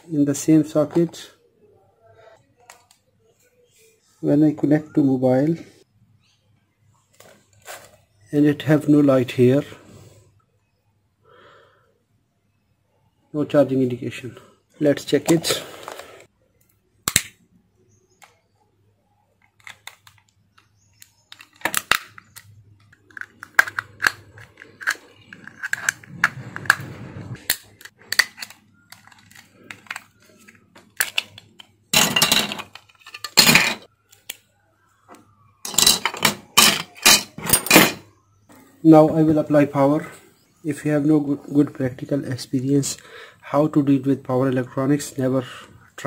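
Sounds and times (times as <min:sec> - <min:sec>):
plastic shell cracking: 0:19.5 - 0:26.1
metal tool scraping plastic: 0:23.0 - 0:27.0.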